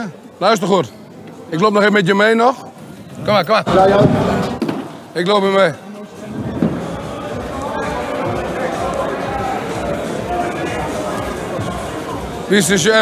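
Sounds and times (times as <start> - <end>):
hubbub of indistinct voices: 0.0 - 13.0.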